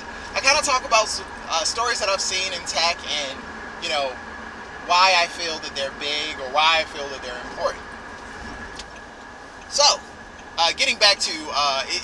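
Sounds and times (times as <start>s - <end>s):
car cabin hum and hiss: 0.0s - 12.0s.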